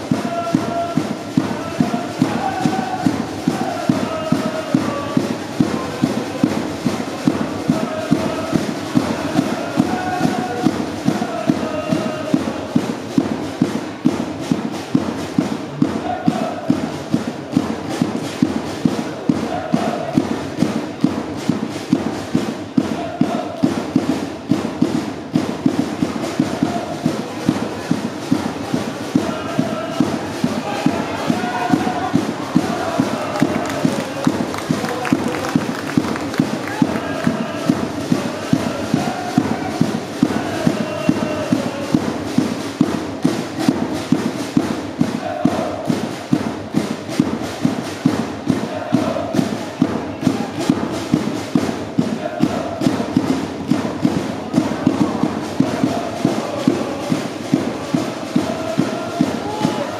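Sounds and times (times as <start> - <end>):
crowd chanting in unison: 0.0 - 59.9
steady drumbeat: 0.0 - 59.9.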